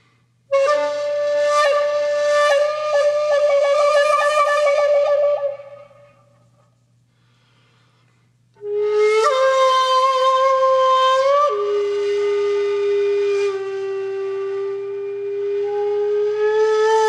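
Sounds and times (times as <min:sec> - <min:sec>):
flute-like wind instrument: 0:00.5 - 0:06.4, 0:08.6 - 0:17.0.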